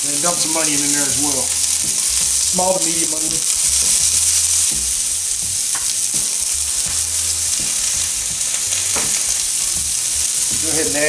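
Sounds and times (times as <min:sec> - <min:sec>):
onion sizzling in a skillet: 0:00.0 - 0:11.0.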